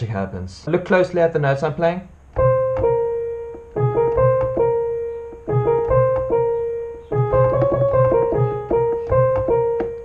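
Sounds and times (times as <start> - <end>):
piano playing chords: 2.2 - 10.0.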